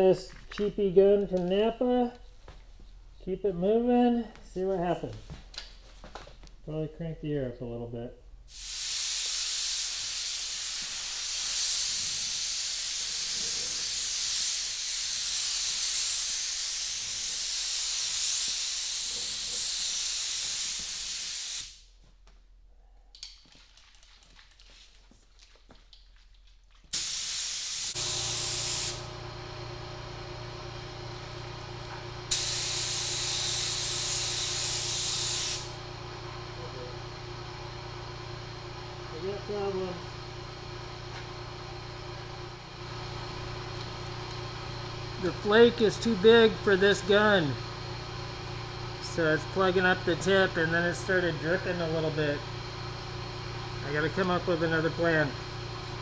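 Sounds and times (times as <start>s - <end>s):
spray gun hissing: 8.5s - 21.8s, 26.9s - 29.1s, 32.3s - 35.8s
steady low hum: 27.9s - 56.0s.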